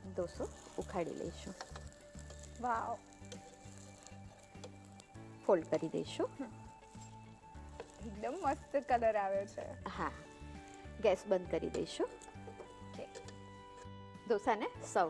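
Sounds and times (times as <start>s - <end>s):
dosa sizzling in a pan: 0.0s - 14.5s.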